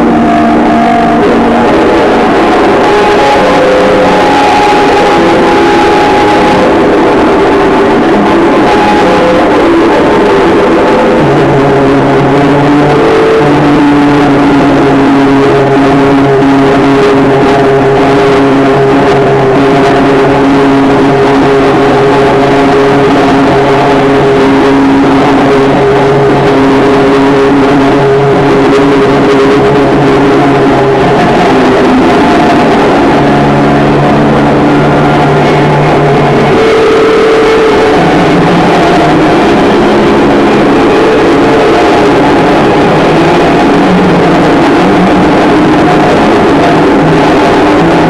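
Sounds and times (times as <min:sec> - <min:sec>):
distorted noise music: 0:00.0 - 0:48.0
low held drones: 0:00.0 - 0:48.0.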